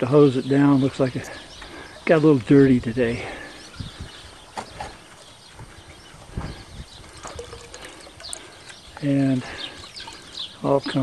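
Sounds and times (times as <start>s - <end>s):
water trickling: 7.0s - 11.0s.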